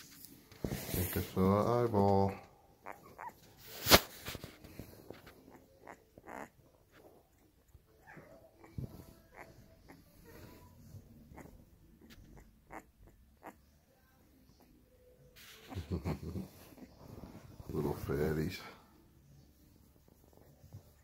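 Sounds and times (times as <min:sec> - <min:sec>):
puppy whimpers and breaths: 0:02.2 - 0:21.0.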